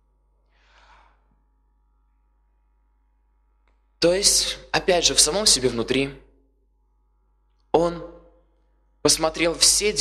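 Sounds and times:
breath into a microphone: 0.4s - 1.4s.

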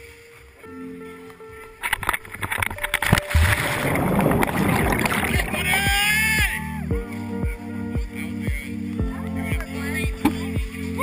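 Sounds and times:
faint background music: 0.0s - 11.0s
rushing and buffeting wind noise: 1.7s - 6.6s.

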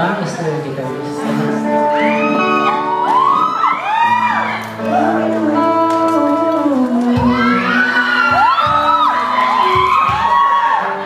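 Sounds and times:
live band music: 0.0s - 11.0s
audience screaming and cheering: 1.4s - 11.0s.

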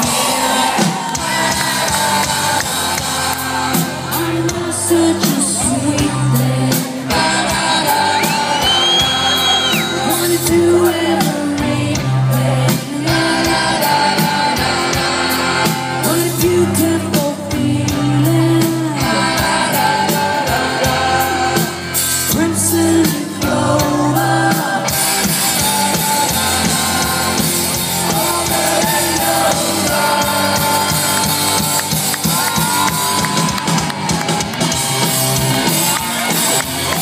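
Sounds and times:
drum kit: 0.0s - 37.0s
electric guitars: 0.0s - 37.0s
rock band playing live: 0.0s - 37.0s.

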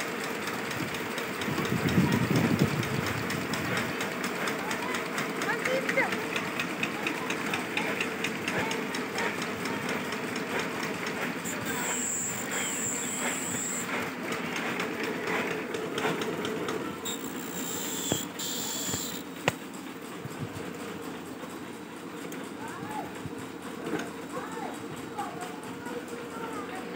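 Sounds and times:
machines clattering rhythmically: 0.0s - 26.9s
steady machine hum: 0.0s - 26.9s.

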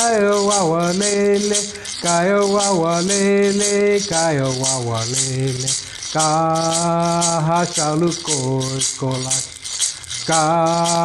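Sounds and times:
hand-held rattle shaken: 0.0s - 11.0s
man singing: 0.0s - 11.0s.

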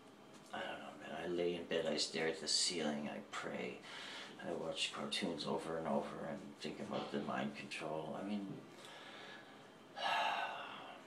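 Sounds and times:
man breathing heavily: 3.8s - 4.4s, 8.8s - 11.0s.

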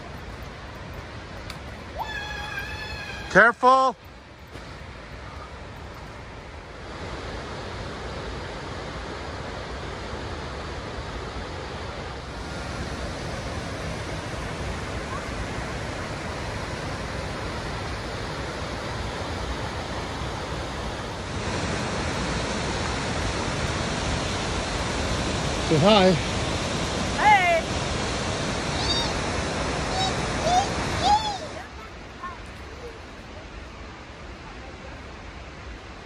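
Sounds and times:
waterfall roaring: 0.0s - 36.0s.

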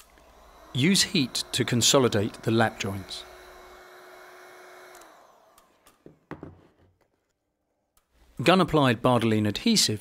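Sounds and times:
fan winding down: 0.0s - 6.0s
heat gun blowing air: 0.0s - 6.0s.

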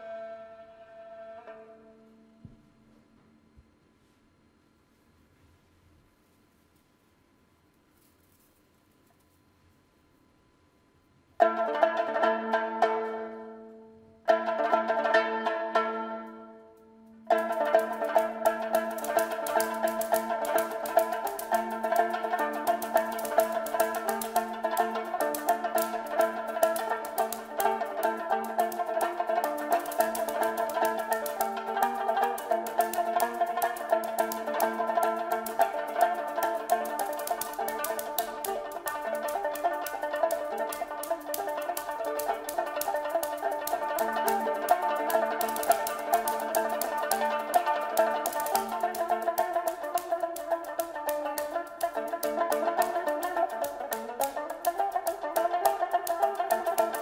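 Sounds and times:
percussion stick strokes: 16.8s - 57.0s
spike fiddle: 17.3s - 57.0s.

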